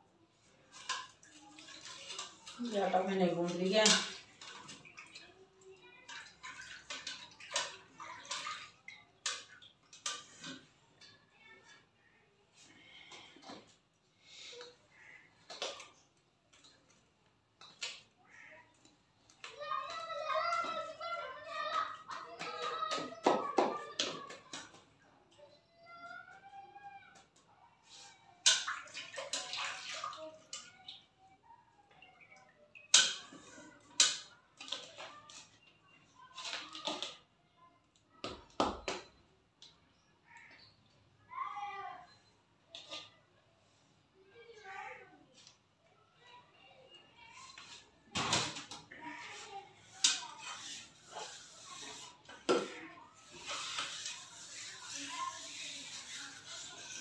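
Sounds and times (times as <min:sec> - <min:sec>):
wet splashes in steel bucket: 0:00.7 - 0:05.3, 0:28.4 - 0:30.7
hands working dough: 0:48.9 - 0:57.0.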